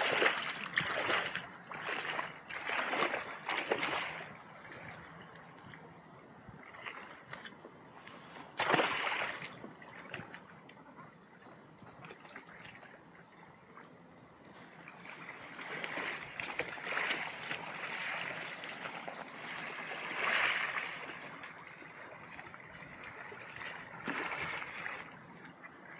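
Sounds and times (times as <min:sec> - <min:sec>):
water lapping at lake edge: 0:00.0 - 0:25.9.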